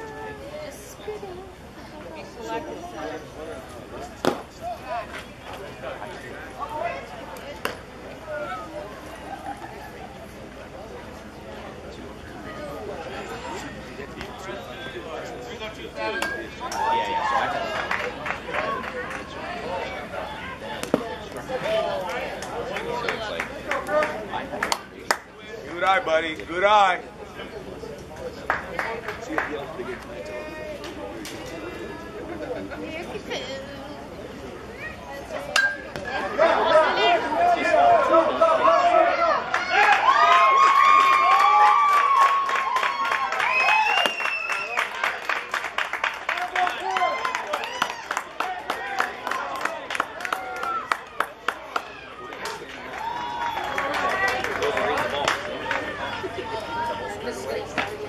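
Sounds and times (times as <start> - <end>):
spectators chatting: 0.0 - 58.0.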